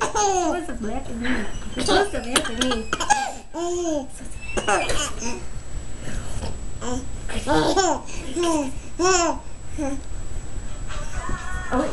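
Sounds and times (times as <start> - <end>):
baby laughing: 0.0 - 0.6.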